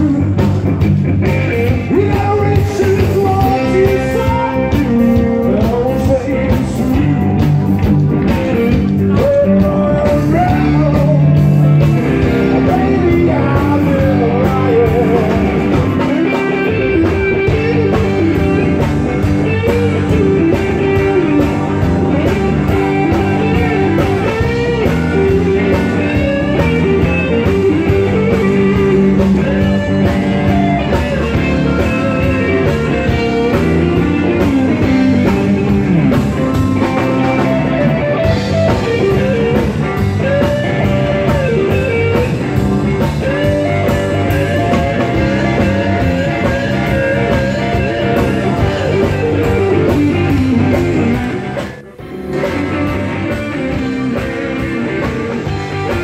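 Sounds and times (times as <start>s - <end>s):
bass guitar: 0.0s - 56.0s
blues-rock band playing: 0.0s - 56.0s
electric guitar lead lines: 0.0s - 56.0s
steady drum beat: 0.0s - 56.0s.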